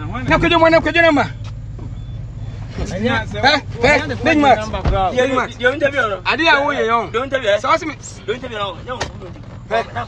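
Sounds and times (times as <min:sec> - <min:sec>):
vehicle engine idling: 0:00.0 - 0:10.0
faint high beeps: 0:00.5 - 0:08.9.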